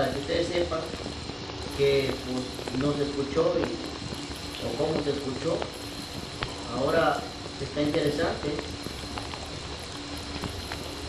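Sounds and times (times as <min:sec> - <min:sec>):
shower spray hissing: 0:00.0 - 0:11.0.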